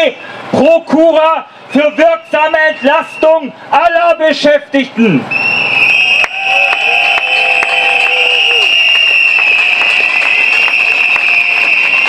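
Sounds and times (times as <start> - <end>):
crowd blowing whistles: 1.7 - 3.5, 5.3 - 12.0.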